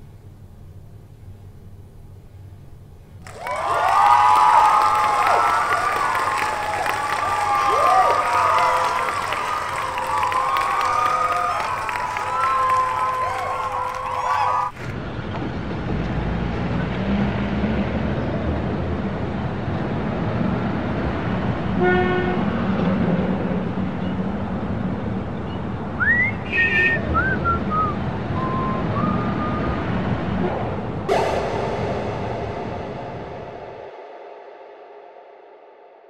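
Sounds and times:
crowd cheering: 3.2 - 14.9
city street traffic: 14.7 - 31.1
car horn toot: 21.8 - 22.5, 26.4 - 27.2
high whistling tones: 26.0 - 29.9, 31.1 - 35.9.

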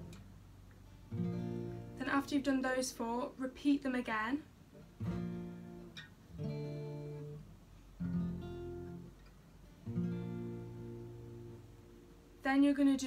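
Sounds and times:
acoustic guitar chords strummed: 0.0 - 3.3, 4.7 - 12.5.

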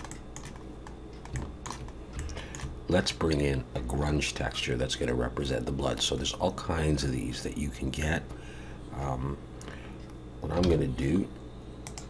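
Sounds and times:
keyboard and mouse clicks: 0.0 - 2.7
low steady hum: 0.0 - 12.0.

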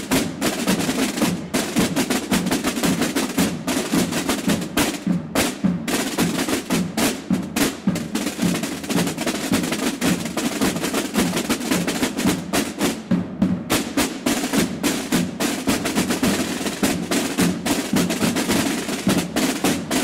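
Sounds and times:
marching snare drums: 0.0 - 20.0.

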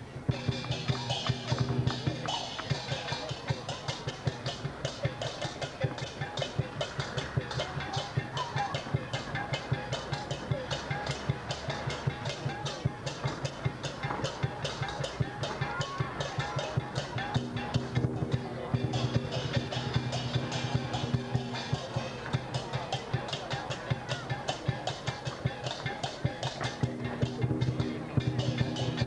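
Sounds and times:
drum beating fast rhythm: 0.0 - 29.0.

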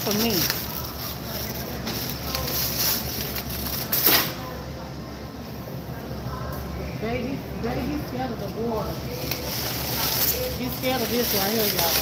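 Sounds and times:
plastic-wrapped bottles handled: 0.0 - 4.2, 8.8 - 12.0.

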